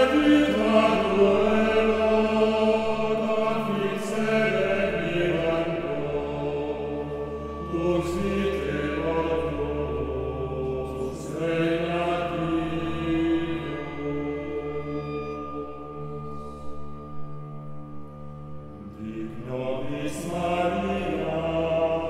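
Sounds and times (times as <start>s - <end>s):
male choir chanting: 0.0s - 16.7s, 18.8s - 22.0s
steady low drone: 0.0s - 22.0s
string ensemble: 0.0s - 22.0s.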